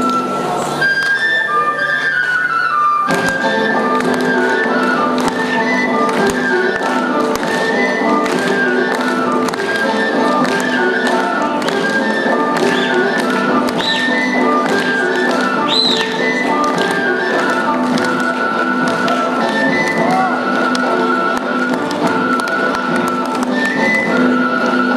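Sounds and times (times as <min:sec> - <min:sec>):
folk dance music: 0:00.0 - 0:24.9.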